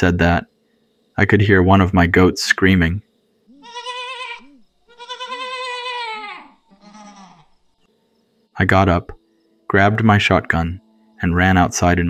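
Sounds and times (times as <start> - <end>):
goat screaming: 3.5 - 7.5.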